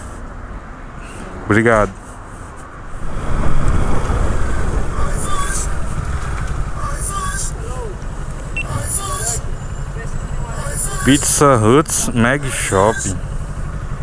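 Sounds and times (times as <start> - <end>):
motorcycle engine rumbling: 1.9 - 14.0.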